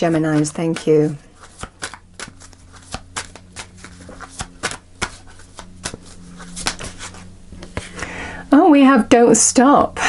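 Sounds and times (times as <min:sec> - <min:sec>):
cards being shuffled by hand: 0:00.0 - 0:08.0.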